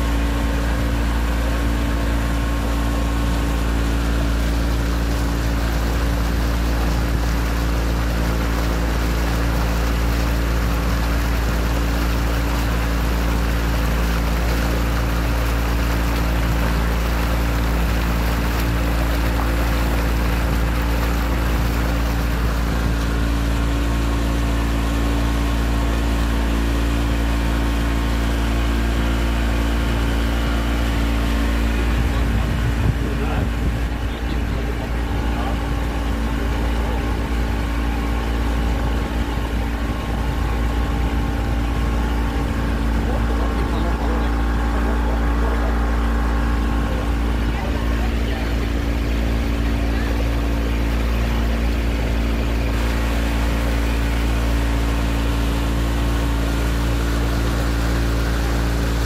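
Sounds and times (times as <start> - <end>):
motorboat engine droning: 0.0 - 59.0
water rushing along hull: 0.0 - 59.0.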